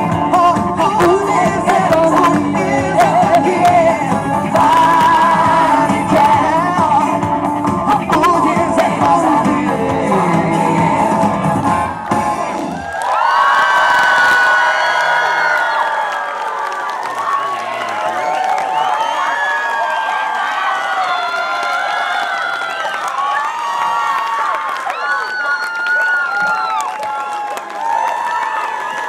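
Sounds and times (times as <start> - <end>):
pop band chord: 0.0 - 12.6
audience cheering and whooping: 11.8 - 29.0.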